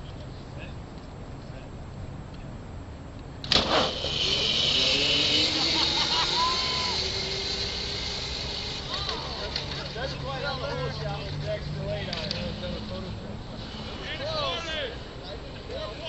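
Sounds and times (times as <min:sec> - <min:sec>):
rising motor whine: 0:03.6 - 0:14.6
crowd voices and shouts: 0:06.0 - 0:07.4, 0:08.8 - 0:16.0.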